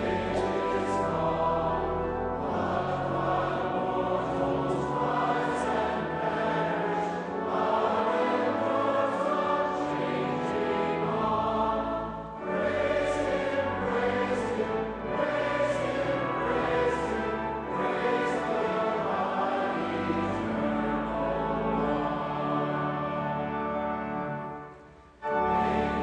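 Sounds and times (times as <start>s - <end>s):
congregation singing a hymn: 0.0s - 26.0s
low sustained accompaniment: 0.0s - 26.0s.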